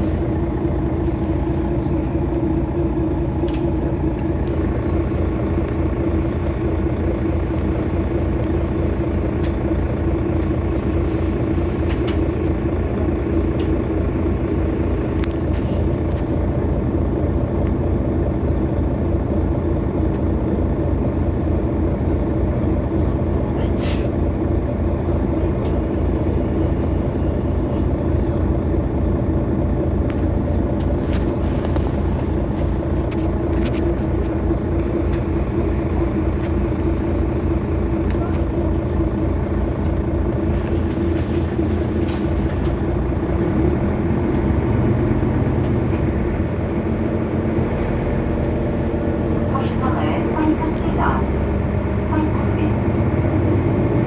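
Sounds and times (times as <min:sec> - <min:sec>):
bus engine drone: 0:00.0 - 0:54.0.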